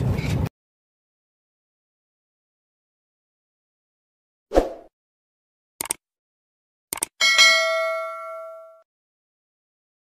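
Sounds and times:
double mouse click: 5.8 - 6.0, 6.9 - 7.1
notification bell ding: 7.2 - 8.9.

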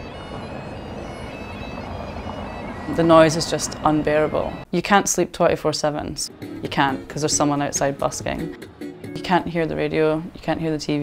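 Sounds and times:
bagpipes playing held notes: 0.0 - 4.7
street noise: 0.0 - 11.0.

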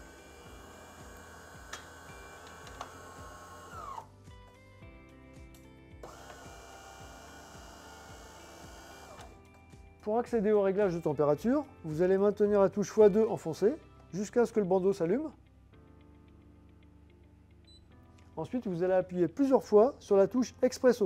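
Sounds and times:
espresso machine motor running: 0.0 - 4.1, 6.0 - 9.4
background music: 0.0 - 21.0.

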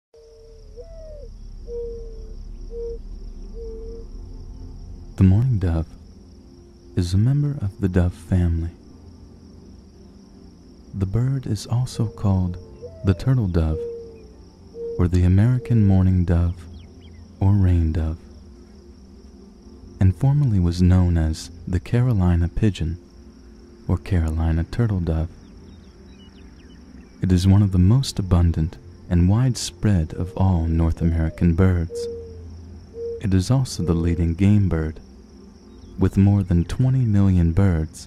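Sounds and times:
dove cooing: 0.2 - 4.2, 11.0 - 18.4, 29.3 - 35.0
steady high-pitched hum: 0.2 - 38.0
narration voice: 5.2 - 6.0, 7.0 - 8.8, 10.9 - 13.9, 15.0 - 16.7, 17.4 - 18.3, 20.0 - 23.0, 23.9 - 25.4, 27.2 - 32.1, 33.2 - 35.0, 36.0 - 38.0.

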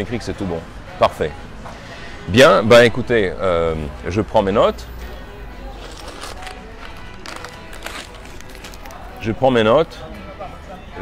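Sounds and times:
quiet background music: 0.0 - 11.0
street traffic hum: 0.0 - 11.0.

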